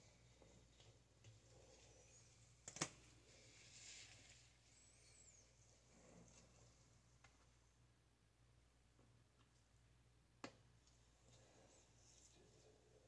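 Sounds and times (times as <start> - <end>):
faint rustling of hair: 0.0 - 7.8, 10.8 - 13.0.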